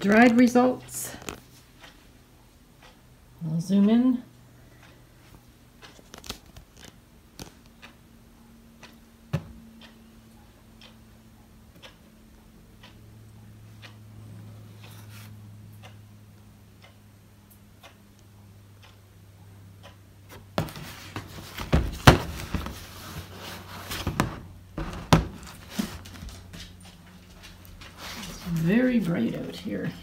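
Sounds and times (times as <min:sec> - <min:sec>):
faint clicks and ticks: 0:00.0 - 0:21.7
low steady hum: 0:00.0 - 0:30.0.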